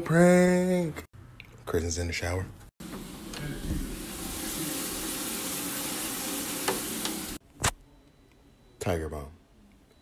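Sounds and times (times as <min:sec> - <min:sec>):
shower spray hissing: 0:02.9 - 0:07.4.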